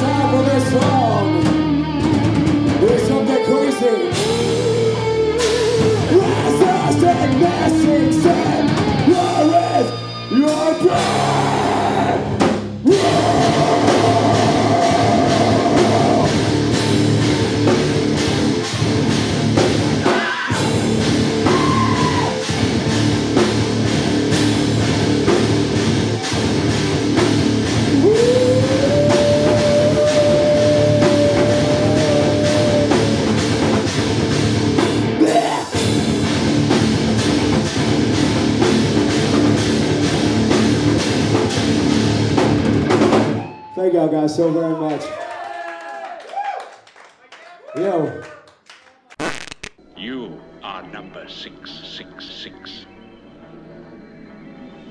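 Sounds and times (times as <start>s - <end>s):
metal band playing live: 0.0s - 43.4s.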